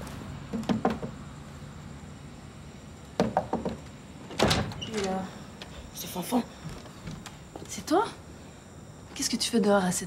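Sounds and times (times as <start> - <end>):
knocking on glass-paned wooden door: 3.2 - 3.8.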